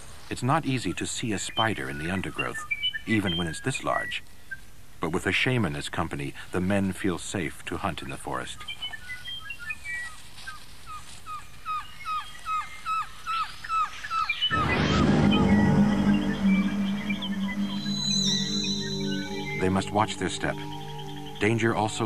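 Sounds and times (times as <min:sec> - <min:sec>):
bird chirping: 0:01.4 - 0:04.6, 0:11.7 - 0:22.0
music chord: 0:14.5 - 0:22.0
wavering high tone: 0:14.5 - 0:22.0.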